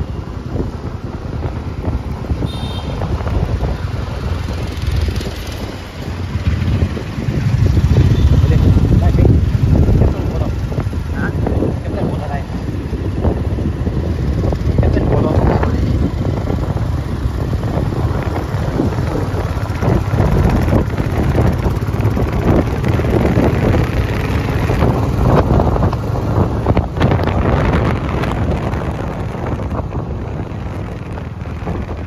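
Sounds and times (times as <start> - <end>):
motorcycle engine rumble: 0.0 - 32.0
wind buffeting on microphone: 0.0 - 32.0.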